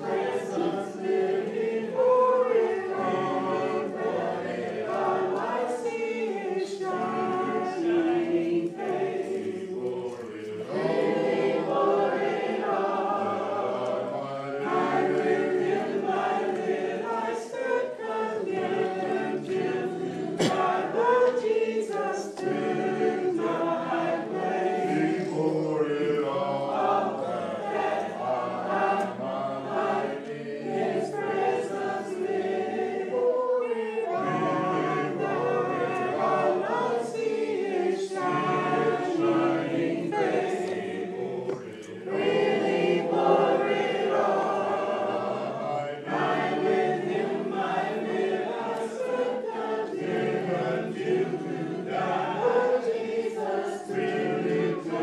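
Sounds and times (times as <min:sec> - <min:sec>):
congregation singing a hymn: 0:00.0 - 0:55.0.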